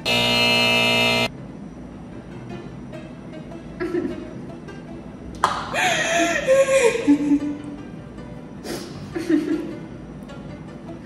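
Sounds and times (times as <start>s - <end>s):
harsh wrong-answer buzzer: 0.0s - 1.3s.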